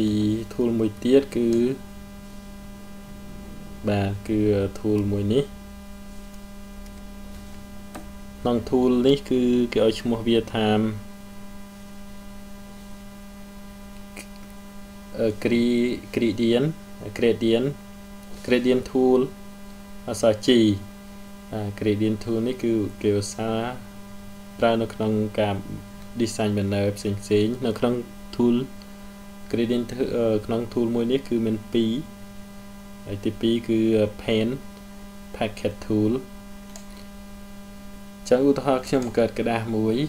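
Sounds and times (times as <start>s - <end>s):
person speaking: 0.0s - 1.9s, 3.0s - 5.6s, 7.3s - 11.1s, 15.1s - 19.4s, 29.5s - 32.1s, 35.3s - 37.0s, 38.2s - 40.0s
electrical hum: 0.0s - 40.0s.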